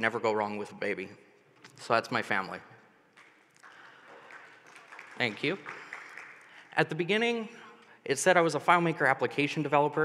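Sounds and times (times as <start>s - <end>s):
faint audience applause: 3.2s - 6.7s.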